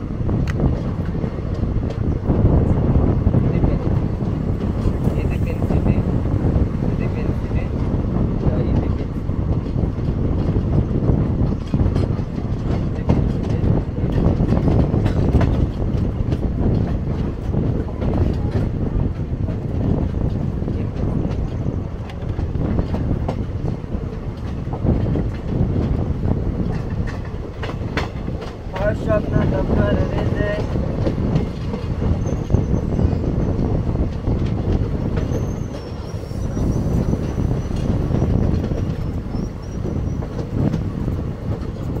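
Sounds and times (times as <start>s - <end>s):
train rumble: 0.0s - 42.0s
wheels clicking over rail joints: 11.4s - 42.0s.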